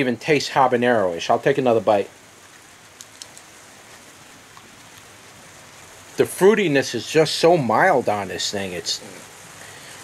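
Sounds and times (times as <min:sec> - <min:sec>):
background hiss: 0:00.0 - 0:10.0
crisp clicks of chewing pepper: 0:02.5 - 0:05.1.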